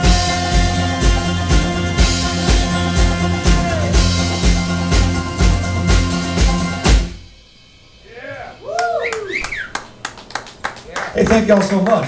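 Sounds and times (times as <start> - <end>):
audience clapping and cheering: 0.0 - 6.8, 8.7 - 12.0
people whooping: 3.3 - 4.1, 8.1 - 11.3.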